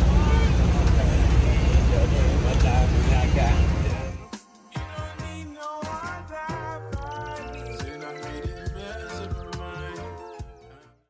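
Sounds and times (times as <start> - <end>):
people talking: 0.0 - 4.2
low traffic rumble: 0.0 - 4.3.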